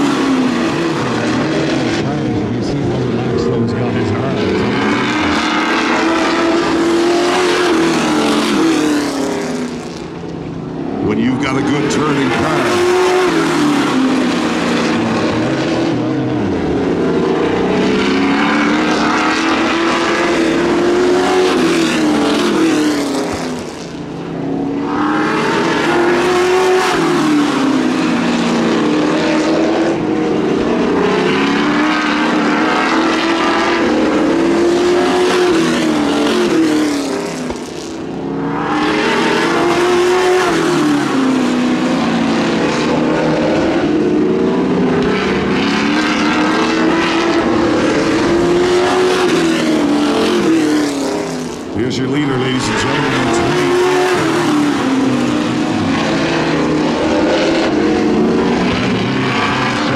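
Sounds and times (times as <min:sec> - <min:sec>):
stock car engines racing: 0:00.0 - 0:59.9.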